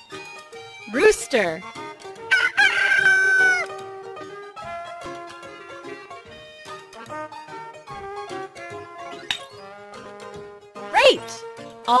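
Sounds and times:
light background music: 0.0s - 12.0s
rooster crowing: 2.3s - 3.7s.

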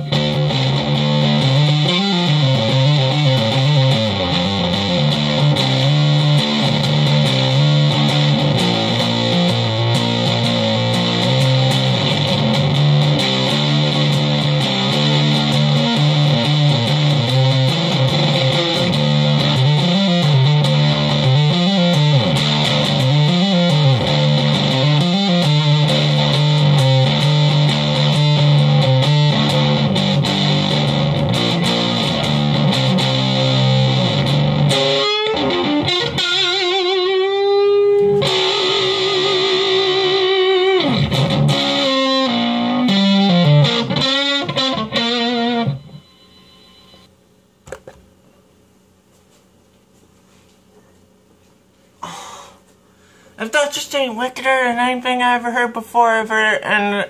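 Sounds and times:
fuzzy electric guitar: 0.0s - 47.1s.

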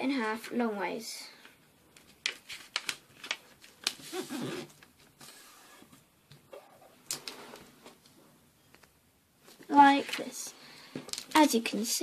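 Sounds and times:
paper crackling and rustling: 2.0s - 5.8s.

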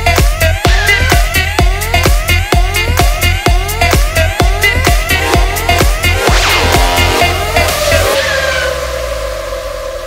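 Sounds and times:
electronic dance beat: 0.0s - 9.3s
held synth tone: 5.1s - 9.2s.

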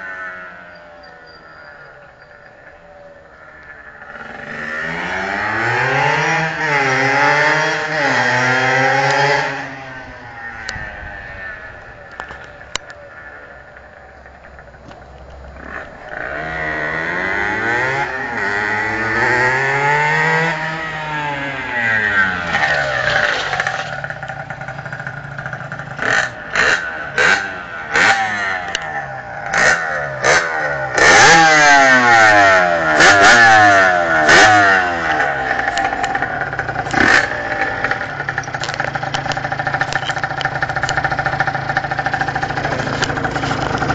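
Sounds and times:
two-stroke motorbike engine revving: 3.4s - 12.8s, 15.5s - 43.9s.

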